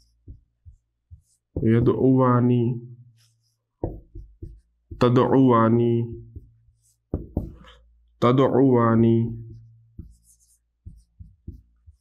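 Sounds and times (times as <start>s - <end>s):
marker squeaking on whiteboard: 0.0s - 2.2s, 3.1s - 5.3s, 6.1s - 7.7s, 9.2s - 12.0s.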